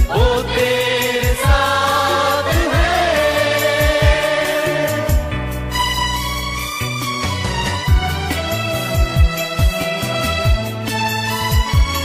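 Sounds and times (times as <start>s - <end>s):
backing track drum beats: 0.0s - 5.8s, 7.2s - 12.0s.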